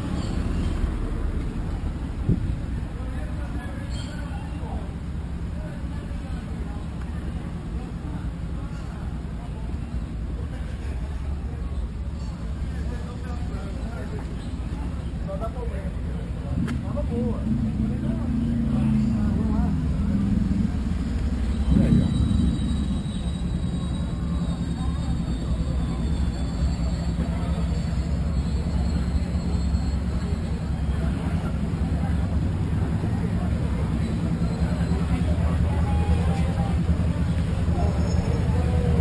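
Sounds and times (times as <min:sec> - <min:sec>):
motorcycle engine rumbling: 0:00.0 - 0:39.0.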